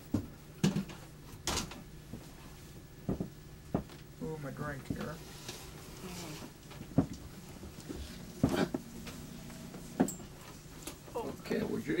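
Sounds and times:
dull knocks against furniture: 3.0s - 3.9s.

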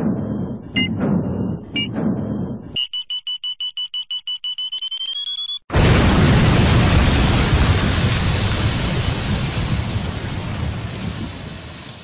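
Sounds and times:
short high electronic beeps: 0.7s - 1.9s.

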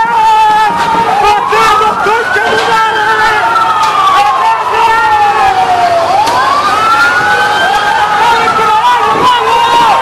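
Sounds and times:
police siren wailing: 0.0s - 10.0s.

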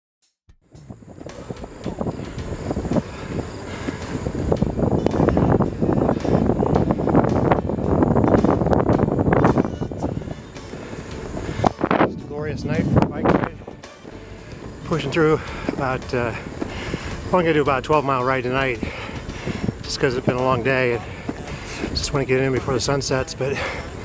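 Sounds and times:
wind buffeting microphone: 0.6s - 24.0s.

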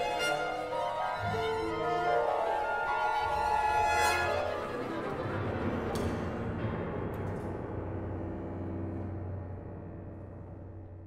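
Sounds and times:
contemporary classical ensemble music: 0.0s - 11.0s.

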